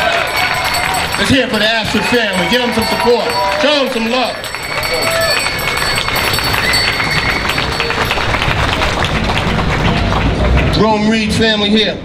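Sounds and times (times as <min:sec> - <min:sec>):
voices: 0:00.0 - 0:08.4
crowd applauding: 0:00.0 - 0:11.2.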